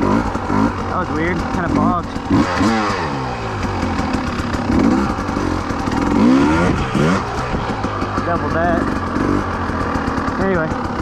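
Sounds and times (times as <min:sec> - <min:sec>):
motorcycle engine revving: 0:00.0 - 0:11.0.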